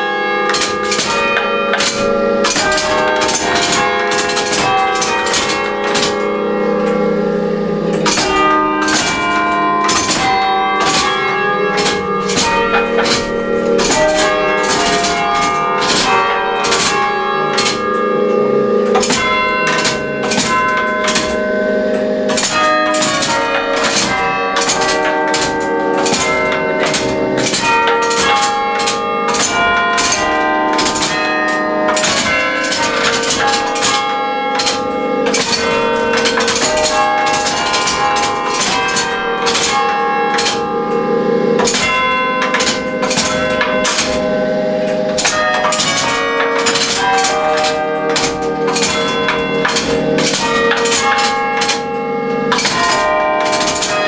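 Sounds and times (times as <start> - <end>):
carillon bells playing a tune: 0.0 - 54.0.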